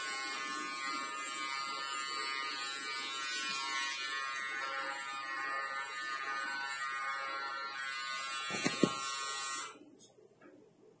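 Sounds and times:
electric hair clipper buzzing: 0.0 - 9.8.

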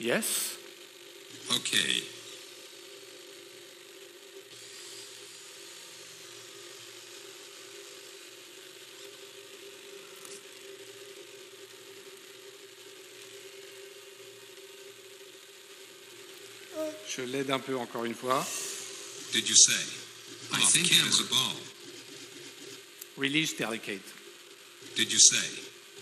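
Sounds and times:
steady hum: 0.0 - 26.0.

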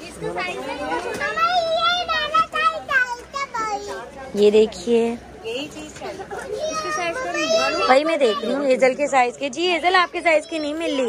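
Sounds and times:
young child talking: 1.2 - 4.1, 6.2 - 8.7.

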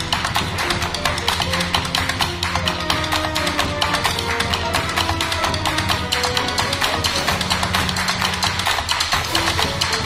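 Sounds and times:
music with fast percussive beat: 0.0 - 10.0.

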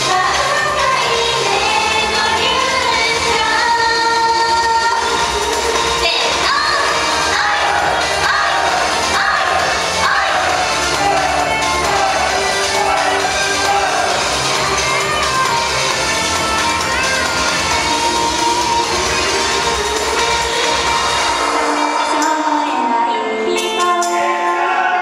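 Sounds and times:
women singing in unison: 0.0 - 5.4, 6.0 - 10.7, 21.4 - 25.0
loud pop backing track: 0.0 - 25.0.

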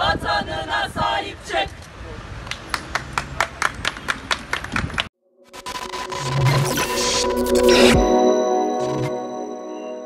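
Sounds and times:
group clapping in rhythm: 2.5 - 5.1.

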